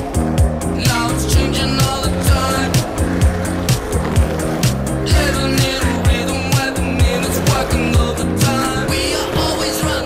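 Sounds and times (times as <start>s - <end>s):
electronic pop music: 0.1s - 10.0s.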